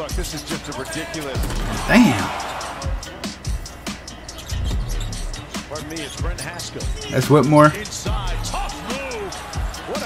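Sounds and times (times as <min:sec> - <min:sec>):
background music: 0:00.0 - 0:10.0
speech: 0:00.1 - 0:02.3, 0:05.8 - 0:07.9.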